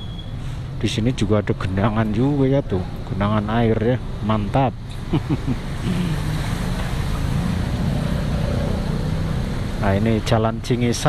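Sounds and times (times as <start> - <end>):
vehicle engines running: 0.0 - 11.0
water spraying under wheels: 5.0 - 10.3.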